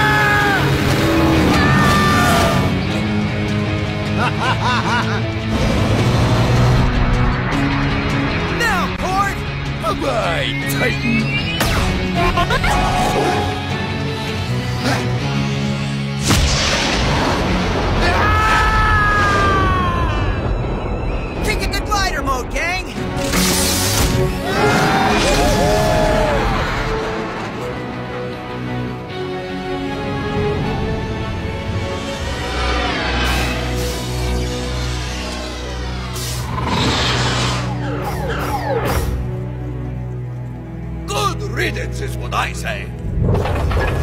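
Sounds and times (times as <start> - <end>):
soundtrack music: 0.0 - 44.0
falling whistling tones: 20.2 - 21.8.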